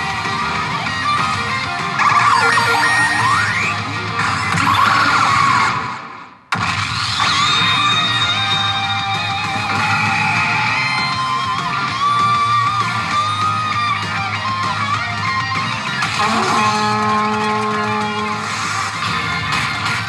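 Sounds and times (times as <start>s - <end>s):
guitar-driven game music: 0.0s - 6.4s, 7.1s - 20.0s
sweeping effect tones: 2.0s - 3.8s.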